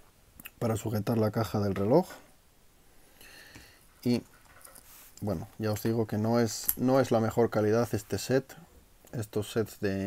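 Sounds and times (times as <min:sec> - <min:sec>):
soft scrape of handling noise: 0:03.8 - 0:07.2.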